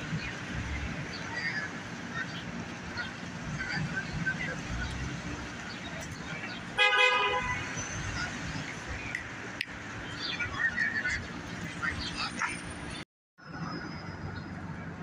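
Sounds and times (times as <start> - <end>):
city street traffic: 0.0 - 15.0
car horn honk: 6.8 - 7.8.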